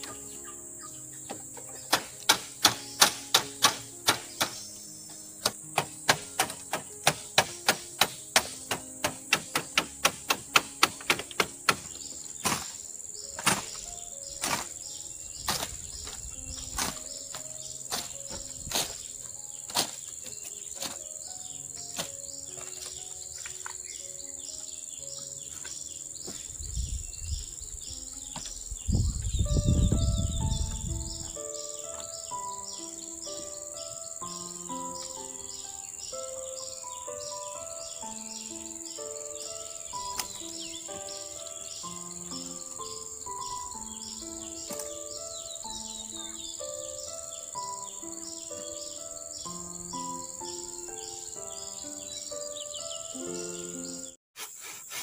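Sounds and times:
slow melody of single notes: 0.0s - 26.6s, 27.4s - 54.2s
insects buzzing: 0.0s - 55.0s.

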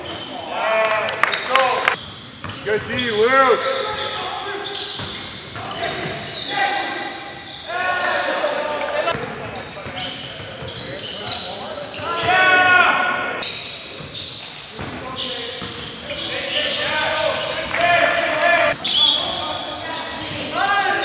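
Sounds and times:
basketball bouncing on court: 2.0s - 3.1s
players shouting: 5.6s - 9.1s, 11.9s - 13.4s, 16.5s - 18.8s.

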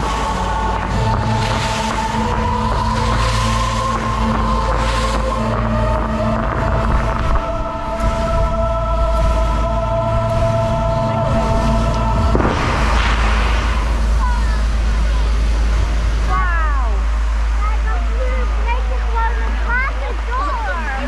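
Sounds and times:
crowd voices: 0.0s - 21.0s
deep rumble: 0.0s - 21.0s
music with sustained chords: 0.0s - 21.0s
flame jets rushing burst: 11.4s - 16.3s.

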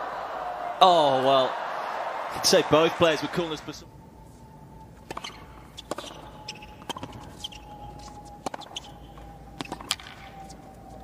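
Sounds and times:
faint steady tone: 2.7s - 11.0s
tennis ball struck and bouncing: 5.0s - 10.6s.

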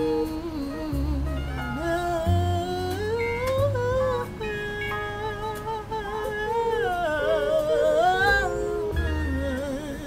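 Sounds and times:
backing music with deep bass: 0.0s - 10.0s
man singing wordless line: 0.0s - 10.0s.

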